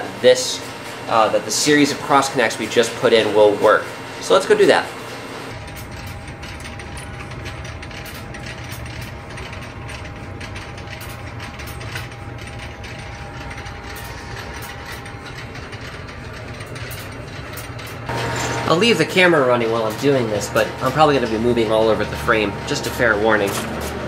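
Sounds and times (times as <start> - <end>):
telephone switching equipment clattering: 5.5 - 24.0.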